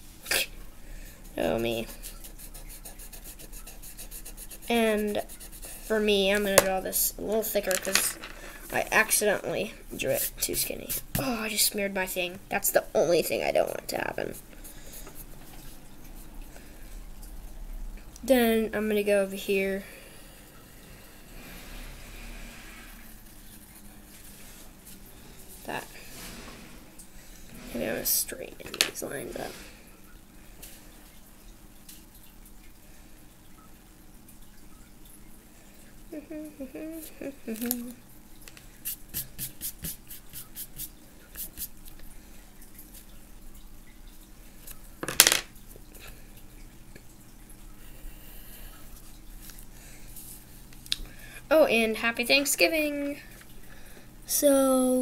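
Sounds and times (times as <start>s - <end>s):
pencil scratching on paper: 2.0s - 6.1s, 38.8s - 41.7s
pencil clattering on wooden table: 7.7s - 8.4s, 45.0s - 45.5s.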